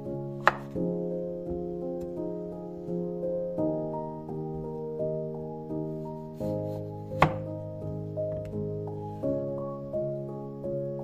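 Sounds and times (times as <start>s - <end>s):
soft background music: 0.0s - 11.0s
knife slicing potato: 0.4s - 0.8s, 7.1s - 7.5s
knife knocking on wooden board: 7.2s - 7.5s.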